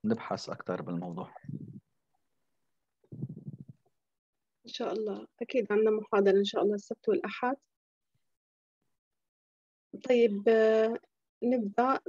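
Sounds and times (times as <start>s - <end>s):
low muffled voice: 0.0s - 1.8s.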